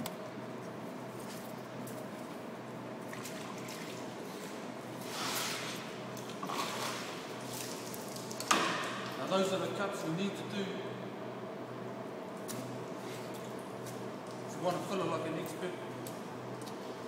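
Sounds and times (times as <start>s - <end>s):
steady background hum: 0.0s - 17.0s.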